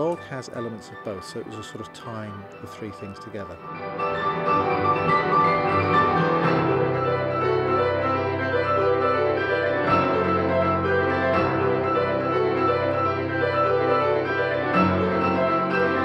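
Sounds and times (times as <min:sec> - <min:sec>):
several grand pianos playing: 0:00.0 - 0:16.0.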